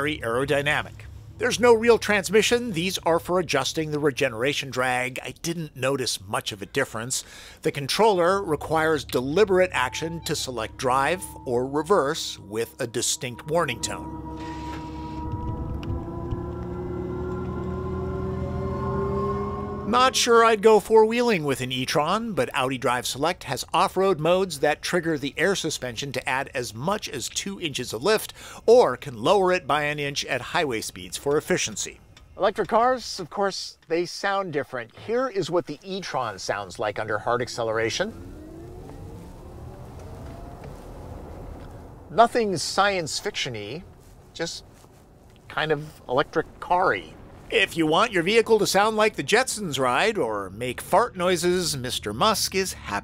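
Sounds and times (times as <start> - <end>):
low road rumble: 0.0 - 33.3, 34.6 - 53.0
electric car hum rising in pitch: 8.3 - 20.6, 37.2 - 42.2
electric motor whine: 13.4 - 19.9, 38.1 - 41.7.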